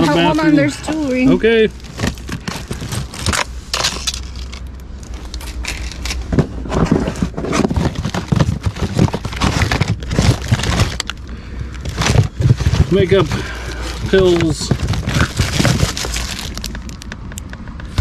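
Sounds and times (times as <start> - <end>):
cardboard rustling: 0.0 - 17.2
plastic packaging crinkling: 0.0 - 17.3
plastic bottles knocking together: 1.8 - 4.6, 5.6 - 17.2.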